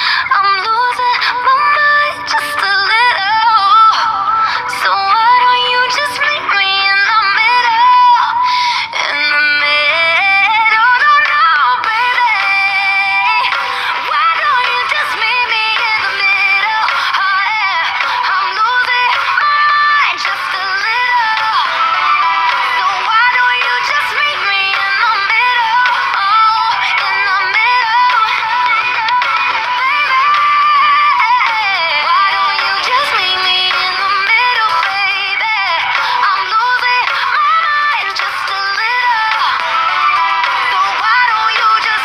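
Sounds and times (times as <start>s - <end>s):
pop song with high vocals: 0.0s - 42.0s.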